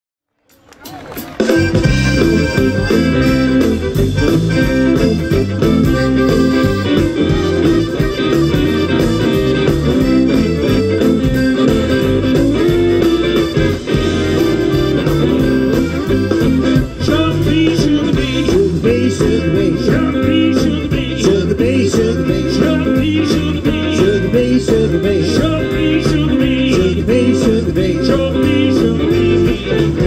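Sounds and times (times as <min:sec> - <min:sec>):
live band playing up-tempo music: 0:00.4 - 0:30.0
steady drum beat: 0:00.8 - 0:30.0.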